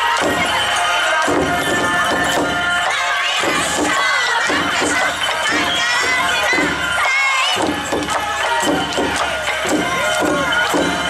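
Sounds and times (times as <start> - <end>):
crowd noise: 0.0 - 11.0
festival dance music: 0.0 - 11.0
young people shouting calls: 0.0 - 11.0.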